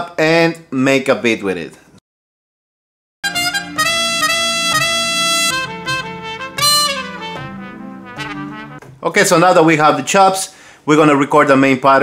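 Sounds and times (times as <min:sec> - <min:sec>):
sampled trumpet notes: 0:03.2 - 0:08.9.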